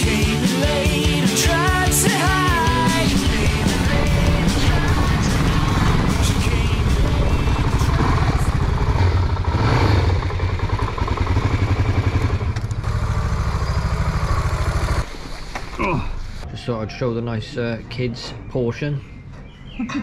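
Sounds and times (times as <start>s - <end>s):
motorcycle engine idling: 1.6s - 15.1s.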